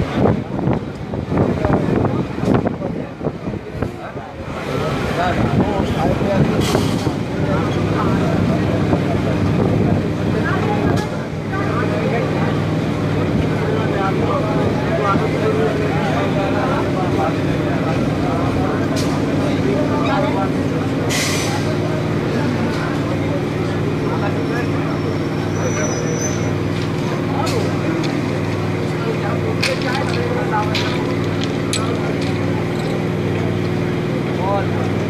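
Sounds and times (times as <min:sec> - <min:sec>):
chatter of many voices: 0:00.0 - 0:35.0
electric train rumbling: 0:00.0 - 0:35.0
train motor hum: 0:00.0 - 0:35.0.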